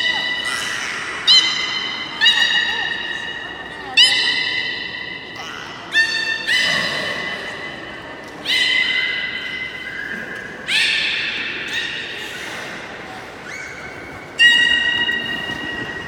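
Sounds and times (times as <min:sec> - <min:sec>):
beluga whale squeals: 0:00.0 - 0:07.4
faint crowd chatter: 0:00.0 - 0:16.0.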